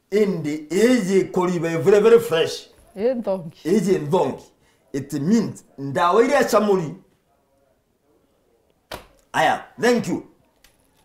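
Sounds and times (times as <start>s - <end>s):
man talking: 0.1s - 2.7s, 3.6s - 7.1s, 9.3s - 10.3s.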